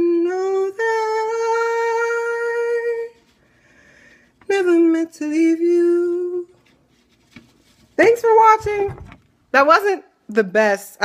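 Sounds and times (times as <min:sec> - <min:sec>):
person singing unaccompanied: 0:00.0 - 0:03.2, 0:04.5 - 0:06.6.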